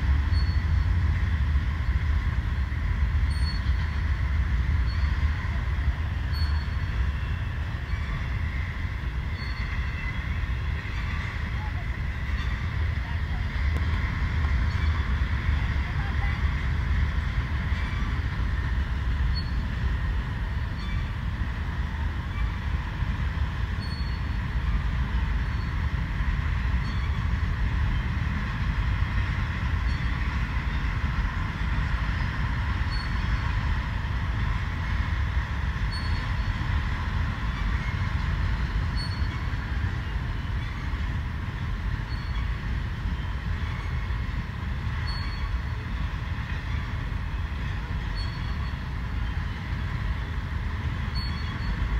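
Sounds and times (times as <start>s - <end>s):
train wheels rumbling on rail: 0.0s - 51.9s.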